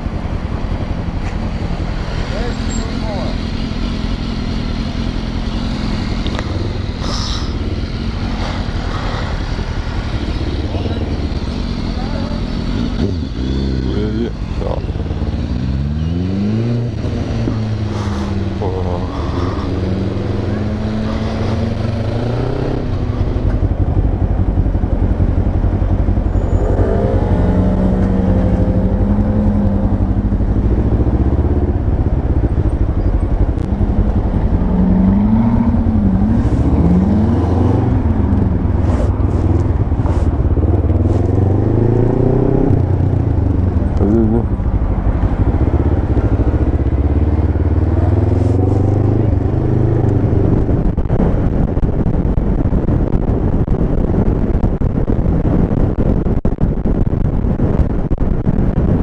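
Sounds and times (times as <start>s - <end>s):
road and wind noise: 0.0s - 59.0s
motorcycle engine revving: 1.6s - 55.7s.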